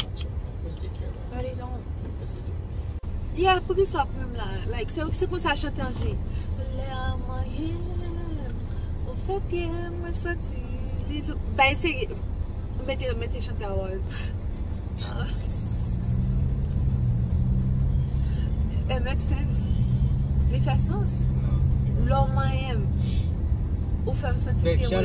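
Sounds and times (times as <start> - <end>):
car cabin rumble: 0.0 - 12.2.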